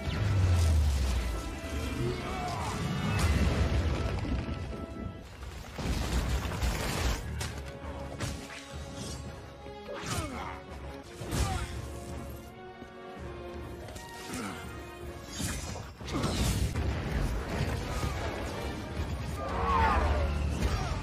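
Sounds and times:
action film music: 0.0 - 21.0.

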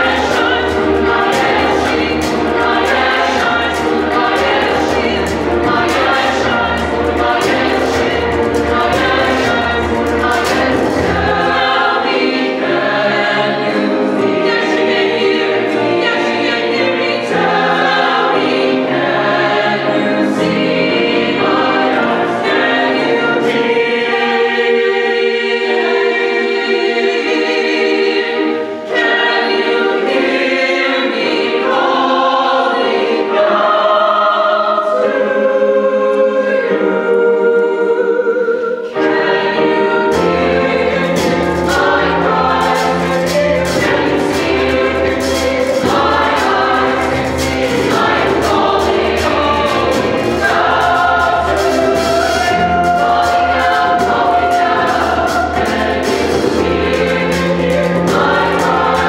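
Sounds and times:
mixed choir singing: 0.0 - 59.0.

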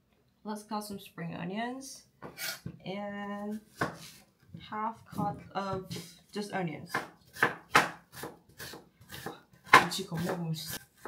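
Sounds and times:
knife chopping on wooden board: 3.7 - 4.2, 6.9 - 11.0.

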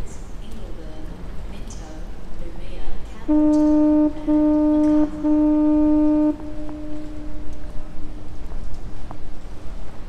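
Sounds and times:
ship's horn blasts: 3.2 - 9.7.

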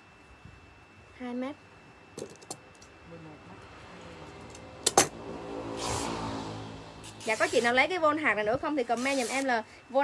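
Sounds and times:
vehicle engine hum: 2.9 - 8.4
road noise: 3.1 - 8.5.

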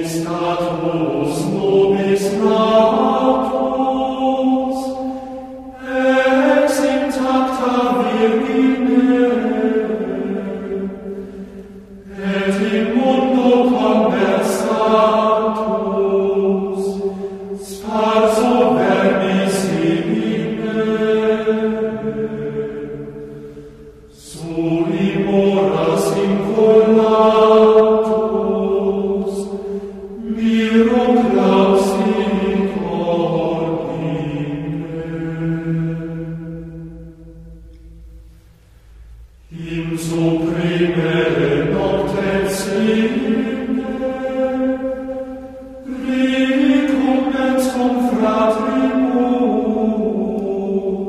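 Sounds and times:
voices singing chant: 0.0 - 37.6, 39.5 - 51.0
breaths: 5.0 - 5.7, 11.1 - 12.0, 17.0 - 17.6, 23.3 - 24.1, 29.6 - 30.1.

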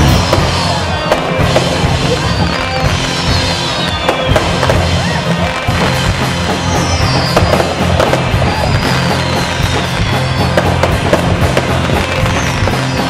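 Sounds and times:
fireworks bursting and crackling: 0.0 - 13.0
music with low notes: 0.0 - 13.0.

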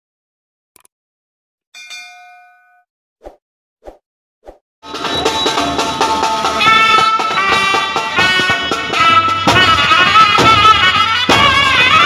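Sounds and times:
bright bell ding: 1.8 - 2.9.

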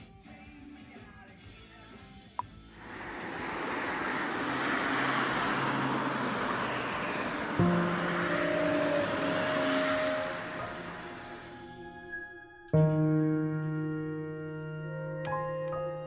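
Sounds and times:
road traffic rushing: 2.8 - 12.2
music with held notes: 7.9 - 16.0.

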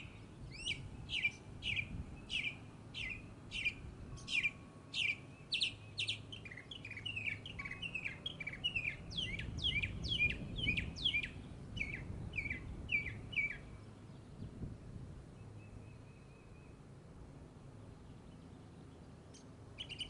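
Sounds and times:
songbirds chirping: 0.0 - 20.0.

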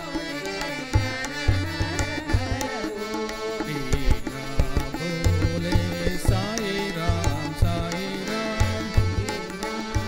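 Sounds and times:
harmonium melody: 0.0 - 10.0
tabla playing lively rhythm: 0.0 - 10.0.

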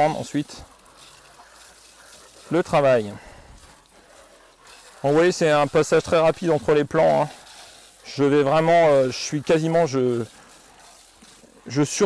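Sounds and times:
hose spray hissing: 0.0 - 12.0.

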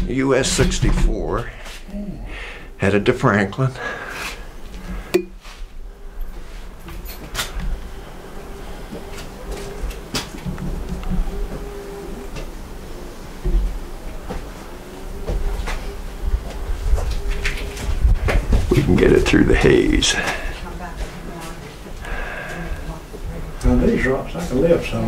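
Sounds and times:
faint steady hum: 0.0 - 25.0
wind on microphone: 15.1 - 19.6.

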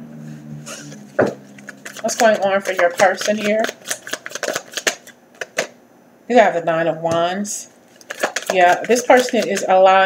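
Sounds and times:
cards being shuffled: 0.7 - 5.7, 7.9 - 9.8.

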